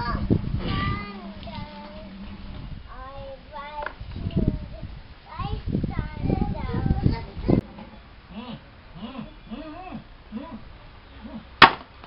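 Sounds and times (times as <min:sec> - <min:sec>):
machete chopping wooden stick: 0:11.6 - 0:11.9.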